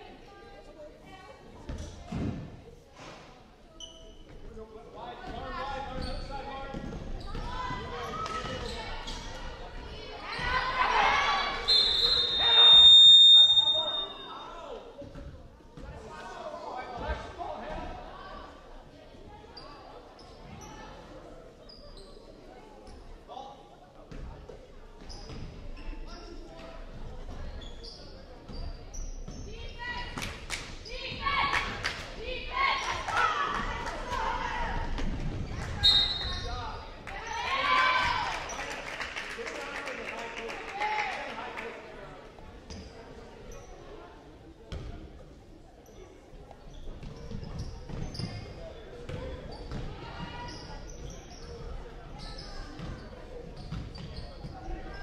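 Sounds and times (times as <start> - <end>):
people shouting in a hall: 10.2 - 14.8
referee's whistle: 11.6 - 14.5, 35.8 - 36.6.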